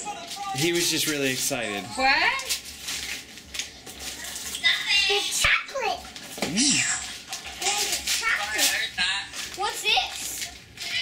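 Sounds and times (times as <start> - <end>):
children talking and exclaiming: 4.0 - 8.9, 9.5 - 11.0.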